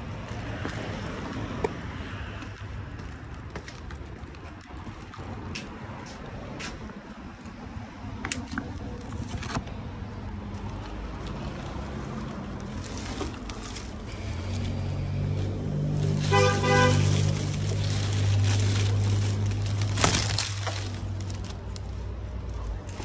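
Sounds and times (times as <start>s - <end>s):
passing vehicle rumble: 0.0s - 23.0s
car horn toot: 16.2s - 17.3s.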